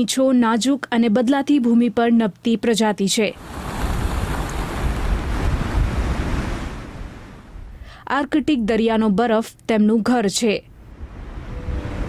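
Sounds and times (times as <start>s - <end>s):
rushing wind: 3.4s - 7.8s, 10.9s - 12.0s
wind buffeting microphone: 3.4s - 7.8s.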